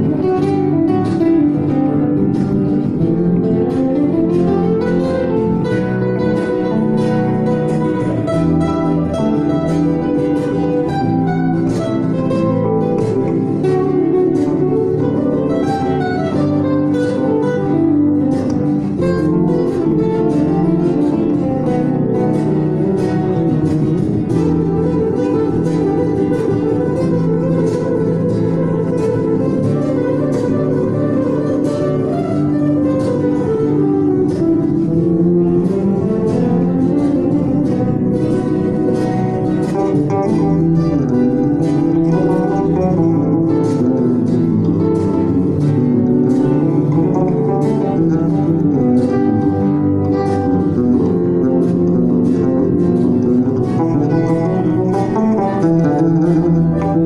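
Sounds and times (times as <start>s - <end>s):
electric bass line: 0.0s - 57.0s
nylon-string guitar fast runs: 0.0s - 57.0s.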